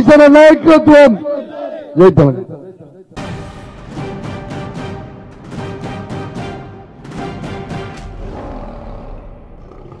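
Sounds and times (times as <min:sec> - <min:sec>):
theme music: 0:03.2 - 0:10.0
lion roar: 0:08.0 - 0:10.0.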